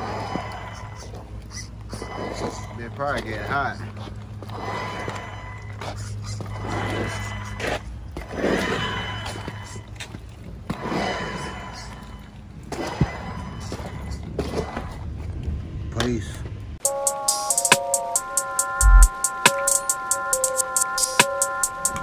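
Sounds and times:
music playing: 16.8s - 22.0s.

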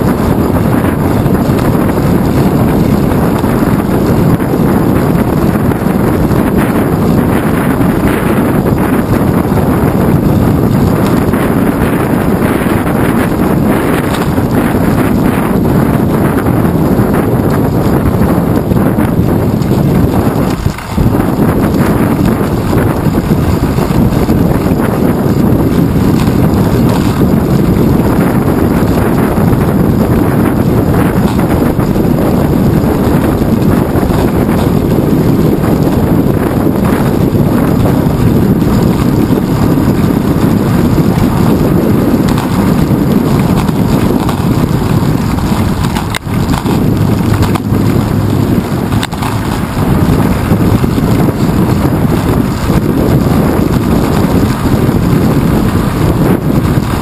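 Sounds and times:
bicycle riding rumble: 0.0s - 57.0s
wind buffeting microphone: 0.0s - 57.0s.

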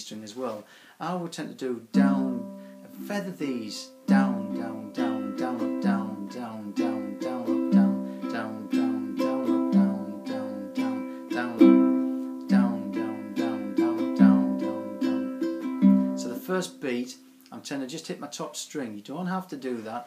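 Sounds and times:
ukulele strumming: 1.9s - 17.3s.

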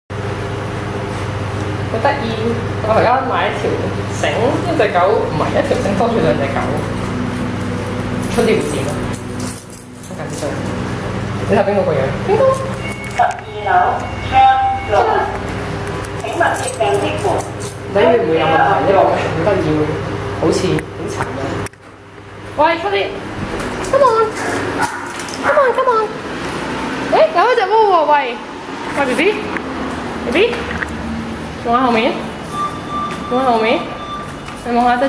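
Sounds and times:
elevator car humming: 0.1s - 35.0s
electronic beep: 12.6s - 15.4s, 32.4s - 34.7s.

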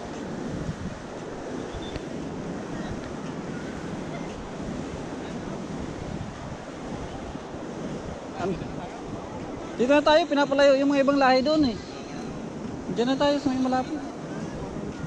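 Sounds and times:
surf breaking on beach: 0.0s - 15.0s
wind buffeting microphone: 0.0s - 15.0s.

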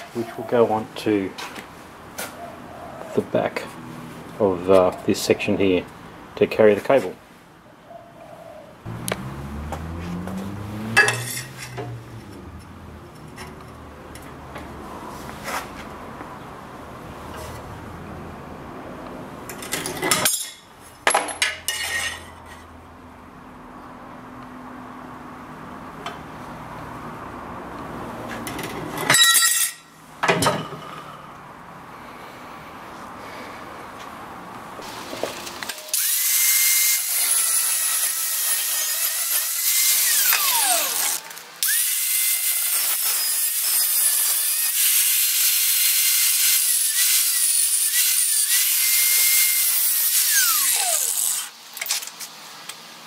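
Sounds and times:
steel pieces being handled: 11.0s - 12.0s, 19.5s - 22.6s, 28.5s - 29.9s.

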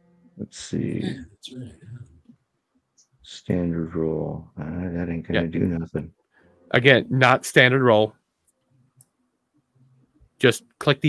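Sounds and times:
man's voice: 0.4s - 2.1s.

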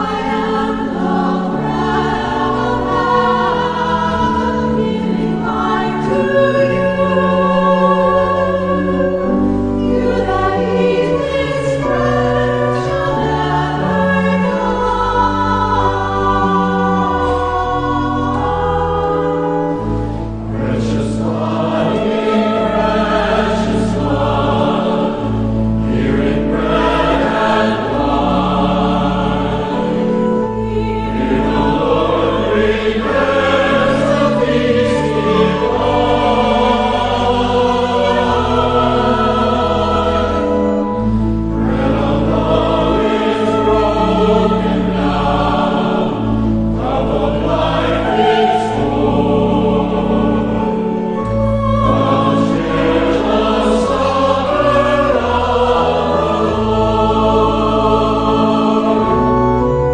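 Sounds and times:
choir singing a hymn: 0.0s - 59.9s
held accompaniment chords: 0.0s - 59.9s.

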